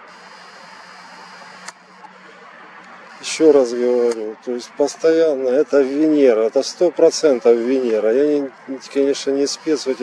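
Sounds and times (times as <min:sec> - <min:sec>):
background hiss: 0:00.0 - 0:02.0
sharp click: 0:01.6 - 0:01.8.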